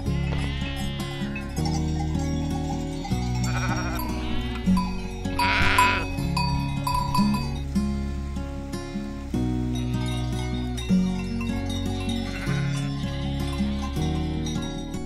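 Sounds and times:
sheep bleating: 0.0 - 1.6, 3.3 - 6.2, 12.1 - 14.4
instrumental background music: 0.0 - 15.0.

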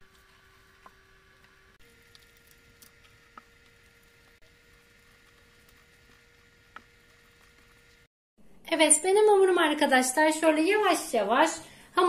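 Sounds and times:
dough squishing by hand: 0.0 - 8.1
faint steady hum: 0.0 - 12.0.

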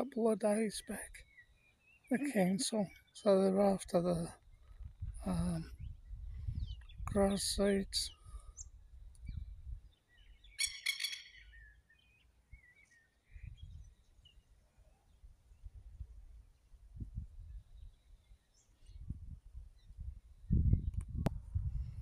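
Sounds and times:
bird chirping: 0.0 - 15.7.

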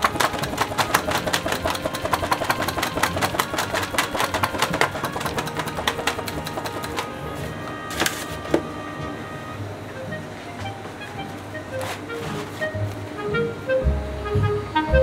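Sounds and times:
crisp crepe crackling and crunching: 0.0 - 8.4
background music: 0.0 - 15.0.

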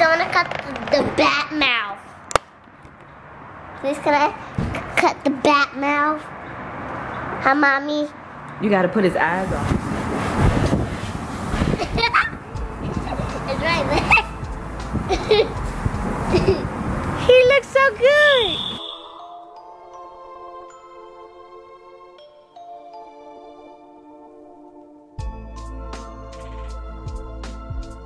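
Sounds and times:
child's voice asking: 0.0 - 2.1, 3.8 - 6.3, 7.4 - 8.2, 13.0 - 14.4.

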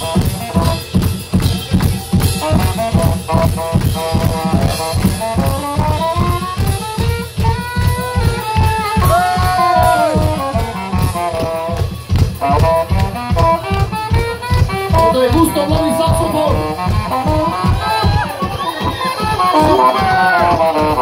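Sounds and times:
percussion beat: 0.0 - 21.0
saxophone melody: 0.0 - 21.0.

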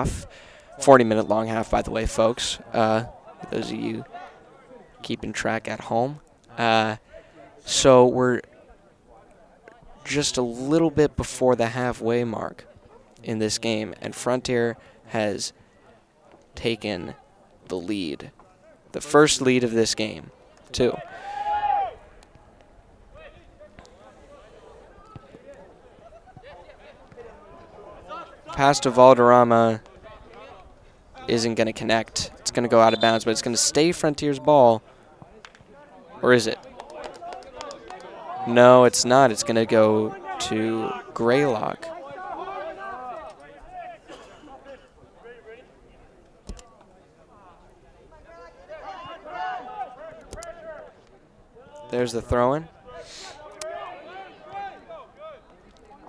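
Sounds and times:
loud high-pitched shout: 21.1 - 22.0
distant voices calling: 32.3 - 34.0.

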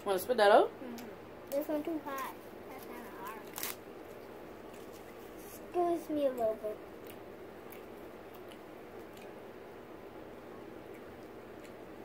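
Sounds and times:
child biting hard brittle: 3.4 - 3.8.

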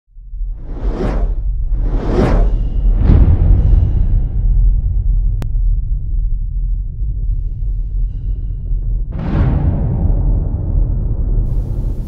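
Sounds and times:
deep low rumble: 0.2 - 12.0
sound-design whoosh: 0.6 - 3.7.

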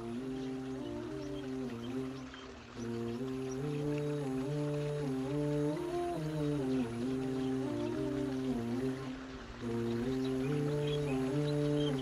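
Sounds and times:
faint rain: 0.0 - 12.0
voice humming long notes: 0.0 - 12.0.

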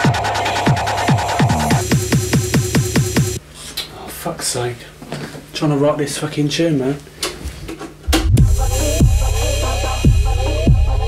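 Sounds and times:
electronic music track: 0.0 - 3.4, 8.1 - 11.0
heavy kick drums: 0.0 - 3.4, 8.1 - 11.0
deep sub-bass: 8.1 - 11.0.

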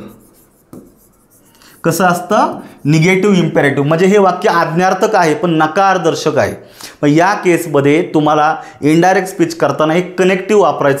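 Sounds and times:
pen scratching on display board: 0.0 - 3.0
man talking: 1.8 - 11.0.

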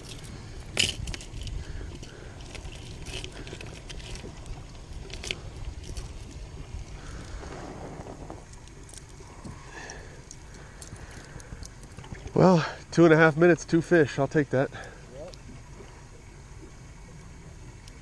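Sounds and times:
fishing tackle clicking and rattling: 0.0 - 7.3, 8.4 - 12.3
steady low rumble: 0.0 - 18.0.

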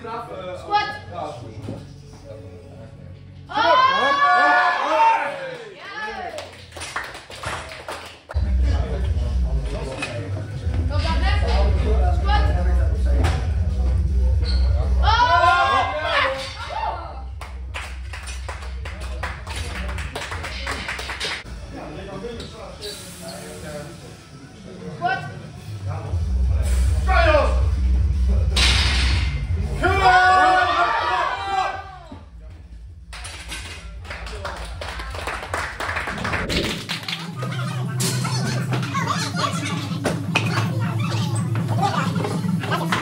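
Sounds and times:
crowd shouting encouragement: 3.5 - 6.2, 29.8 - 32.1
voices cheering: 3.5 - 6.3, 29.8 - 32.2
people clapping: 5.5 - 8.4, 17.3 - 21.5, 33.1 - 39.0.

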